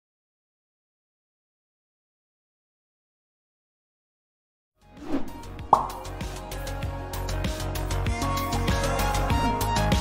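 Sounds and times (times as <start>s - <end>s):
background music: 4.8s - 10.0s.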